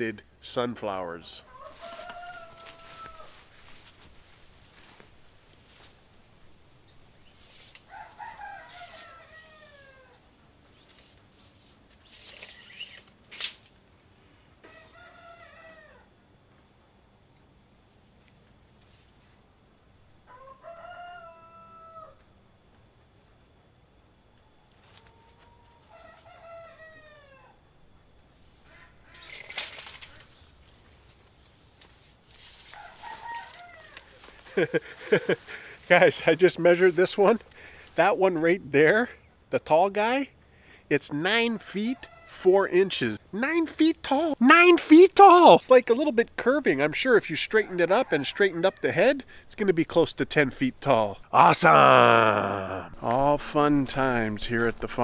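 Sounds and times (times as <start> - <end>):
rooster crowing: 1.4 - 3.6, 7.9 - 10.2, 14.6 - 16.1, 20.3 - 22.2, 24.8 - 27.6, 32.7 - 35.9, 47.6 - 48.8.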